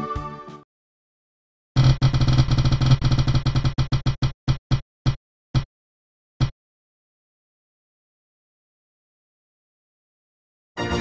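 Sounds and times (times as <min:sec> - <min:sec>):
prize wheel ticking: 0:01.8 - 0:04.6.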